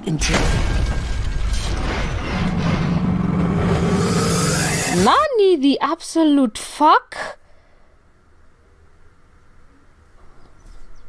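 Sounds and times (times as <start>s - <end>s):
low steady rumble: 0.9s - 5.2s
held low hum: 1.8s - 5.2s.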